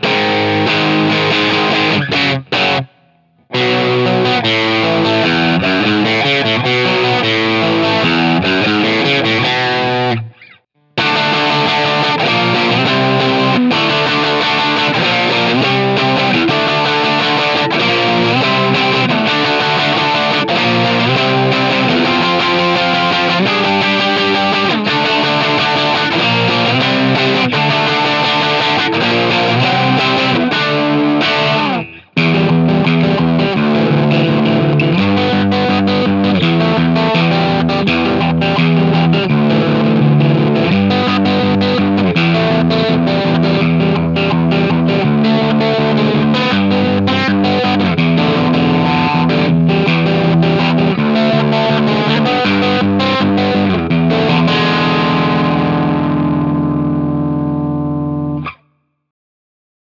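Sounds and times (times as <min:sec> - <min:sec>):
distorted electric guitar strumming: 0:00.0 - 0:58.6.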